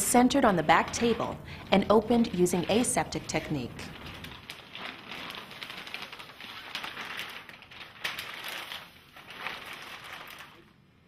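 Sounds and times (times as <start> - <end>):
wrapper crinkling: 0.4 - 11.0.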